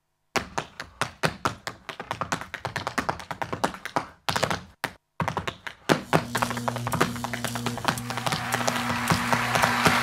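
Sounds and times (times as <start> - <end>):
flamenco heel and toe taps: 0.4 - 10.0.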